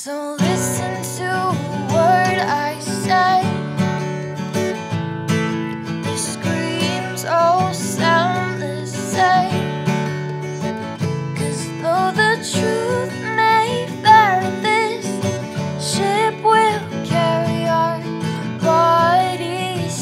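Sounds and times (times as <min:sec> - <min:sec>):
woman singing wordless melody: 0:00.0 - 0:03.8, 0:06.1 - 0:09.9, 0:11.2 - 0:20.0
acoustic guitar strumming: 0:00.4 - 0:20.0.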